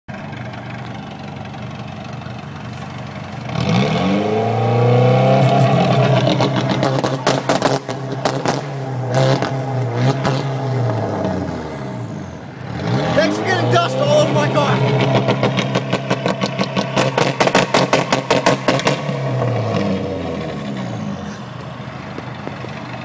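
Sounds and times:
turbocharged car engine revving: 0:01.2 - 0:23.0.

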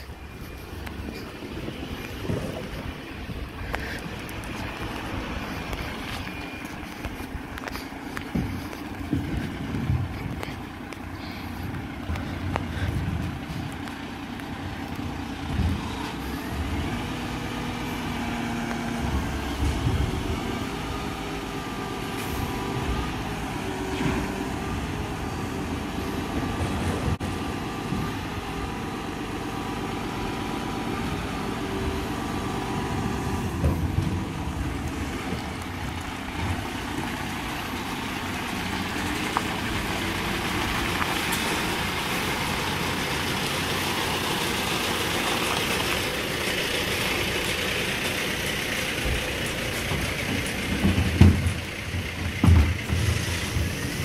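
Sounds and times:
lorry diesel engine running: 0:00.0 - 0:54.0.

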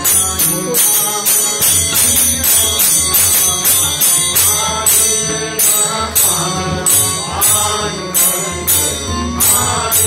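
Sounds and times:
harmonium: 0:00.0 - 0:10.0
sharp bright beat: 0:00.0 - 0:10.0
tabla: 0:00.0 - 0:10.0
voices singing devotional song: 0:00.0 - 0:10.0.

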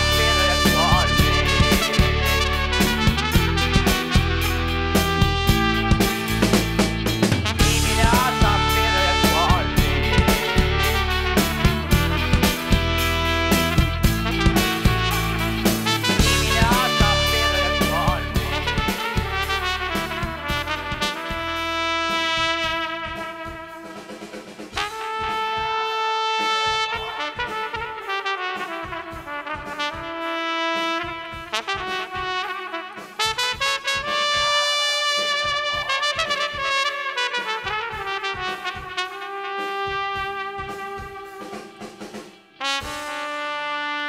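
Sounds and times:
trumpet solo: 0:00.0 - 0:44.0.

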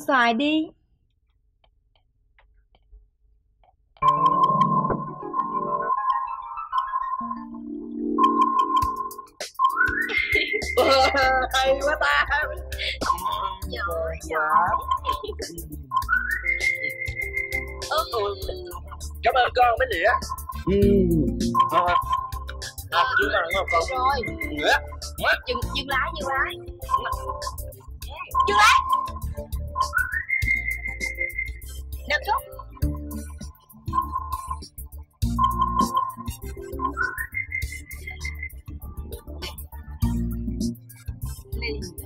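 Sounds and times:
background music: 0:04.0 - 0:42.0
whistle-like tone gliding upward: 0:16.0 - 0:18.2, 0:23.1 - 0:24.6, 0:29.8 - 0:32.0, 0:35.8 - 0:38.7.

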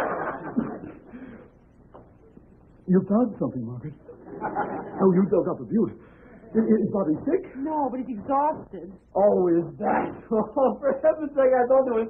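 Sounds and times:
studio audience laughter: 0:00.0 - 0:01.1, 0:04.1 - 0:05.3
man speaking: 0:05.0 - 0:08.4.

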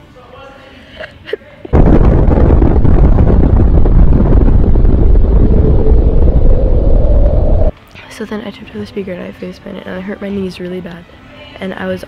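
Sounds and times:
explosion deep rumble: 0:01.7 - 0:07.7.

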